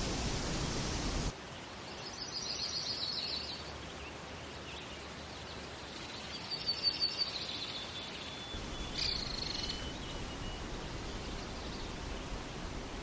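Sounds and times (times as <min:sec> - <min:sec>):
outdoor ambience hiss: 0:00.0 - 0:13.0
birds chirping: 0:02.1 - 0:13.0.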